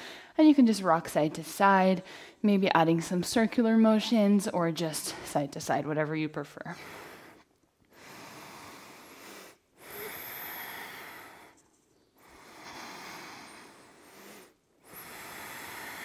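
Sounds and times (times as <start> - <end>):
woman breathing slowly: 0.0 - 0.4, 2.0 - 2.4, 6.7 - 16.0.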